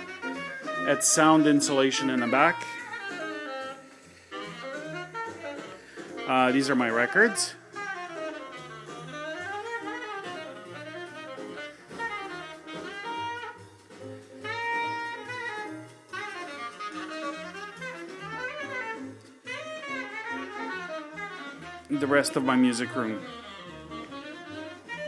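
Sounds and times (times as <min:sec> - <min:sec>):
jazz bass line: 0:00.0 - 0:25.0
jazz horn melody: 0:00.0 - 0:25.0.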